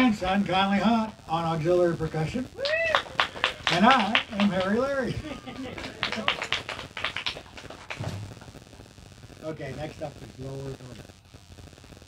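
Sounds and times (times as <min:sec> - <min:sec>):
audience hand clapping: 0:02.6 - 0:08.6.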